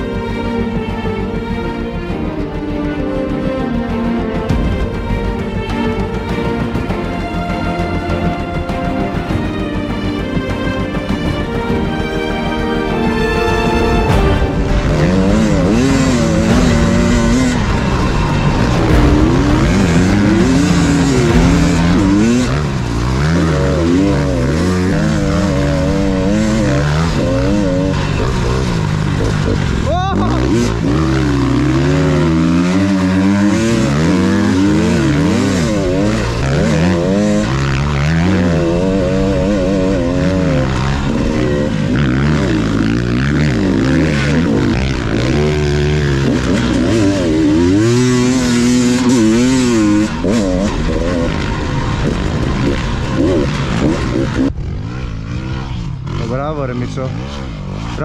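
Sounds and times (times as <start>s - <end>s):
dirt bike engine revving: 0.0s - 58.0s
second dirt bike running: 14.1s - 58.0s.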